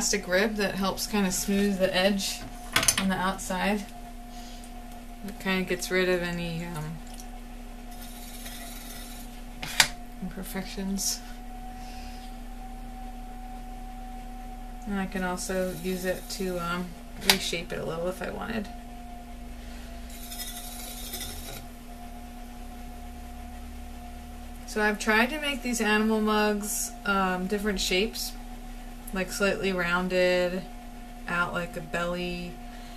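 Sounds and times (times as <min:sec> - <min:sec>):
potter's wheel humming: 0:00.0 - 0:32.9
tool rubbing wet clay: 0:07.9 - 0:09.8, 0:15.5 - 0:16.6, 0:20.1 - 0:21.6.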